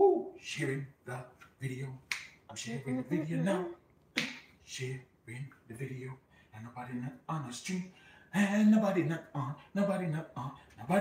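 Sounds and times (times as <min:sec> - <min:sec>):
man making wordless sounds: 0:00.0 - 0:03.8.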